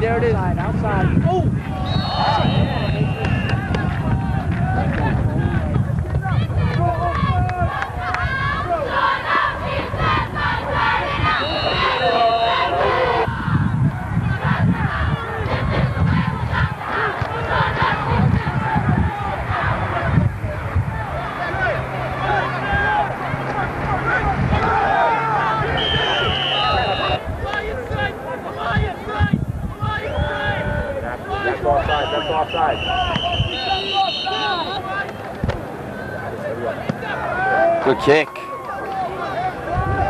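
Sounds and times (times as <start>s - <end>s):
crowd shouting and cheering: 0.0s - 40.0s.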